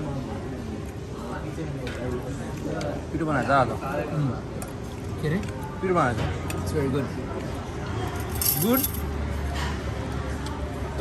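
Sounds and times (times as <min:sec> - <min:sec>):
high clinking jingle: 0:08.2 - 0:09.1.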